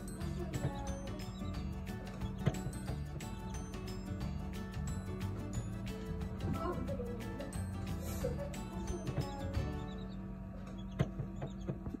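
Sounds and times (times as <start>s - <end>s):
egg incubator humming: 0.0s - 12.0s.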